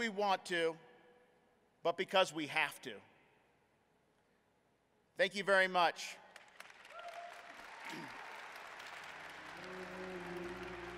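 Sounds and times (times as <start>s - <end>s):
audience applauding: 6.4s - 10.9s.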